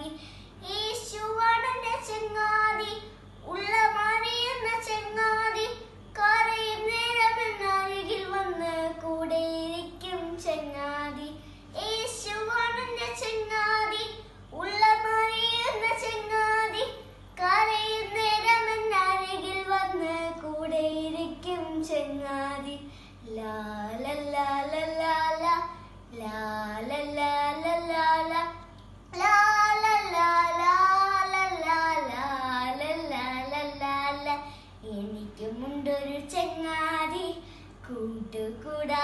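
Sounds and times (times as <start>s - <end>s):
girl singing: 0.0s - 39.0s
girl breathing: 0.1s - 0.6s, 22.8s - 23.3s, 34.4s - 34.8s, 37.4s - 37.8s.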